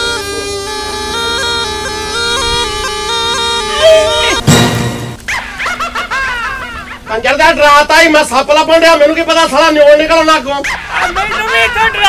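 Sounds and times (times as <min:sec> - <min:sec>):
dog yelping: 0:01.1 - 0:04.5, 0:10.6 - 0:11.9.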